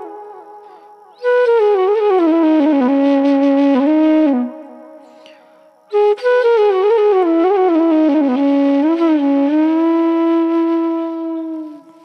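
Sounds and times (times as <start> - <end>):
flute long steady note: 0.0 - 12.0.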